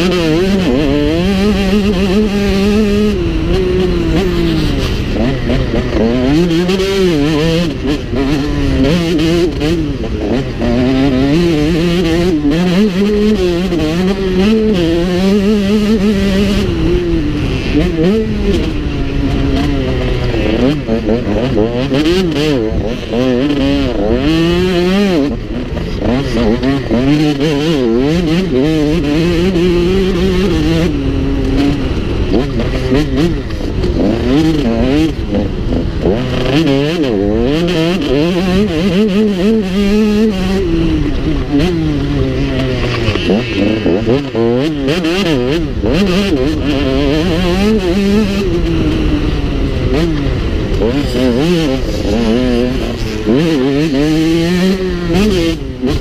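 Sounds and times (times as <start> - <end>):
motocross bike engine revving: 0.0 - 56.0.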